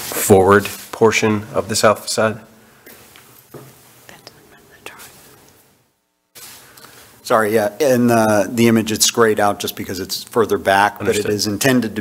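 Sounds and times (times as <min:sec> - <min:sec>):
faint whispering: 0:04.0 - 0:05.5.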